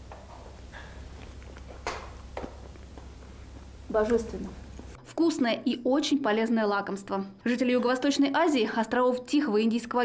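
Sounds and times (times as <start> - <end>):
low steady hum: 0.0 - 5.4.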